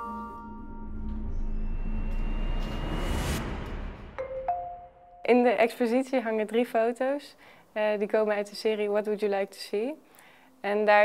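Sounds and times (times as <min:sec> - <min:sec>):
thin high held tone: 0:00.0 - 0:03.5
low droning rumble: 0:00.4 - 0:04.2
swell of noise: 0:00.4 - 0:05.2.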